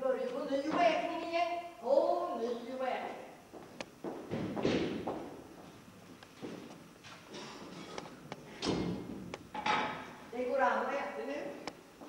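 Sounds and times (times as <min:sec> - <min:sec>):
scraping and shuffling on wooden stage: 0:03.5 - 0:10.1.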